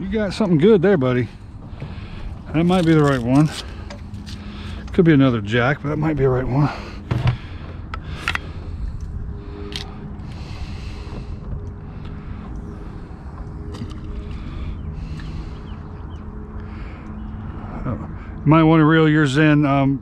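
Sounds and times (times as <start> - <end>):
faint motor hum: 0.0 - 20.0
wind rumbling on microphone: 1.2 - 18.6.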